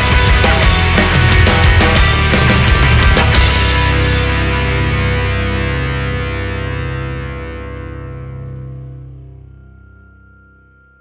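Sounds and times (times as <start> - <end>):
distorted electric guitars sustaining: 0.0 - 11.0.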